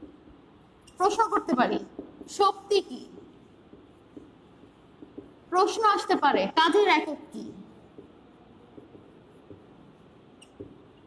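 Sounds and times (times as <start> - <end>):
marker writing on whiteboard: 0.0 - 11.0.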